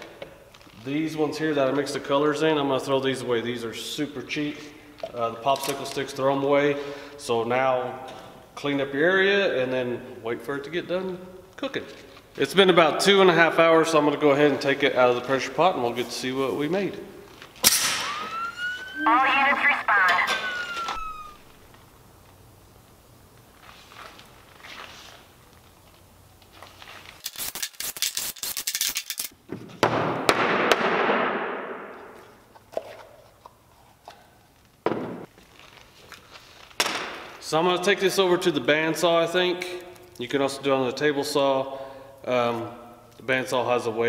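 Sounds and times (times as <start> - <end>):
air hissing and whistling: 17.8 - 19.0, 20.4 - 21.6.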